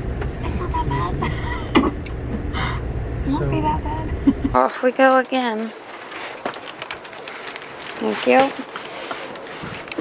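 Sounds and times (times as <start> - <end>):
bag rustling: 5.7 - 10.0.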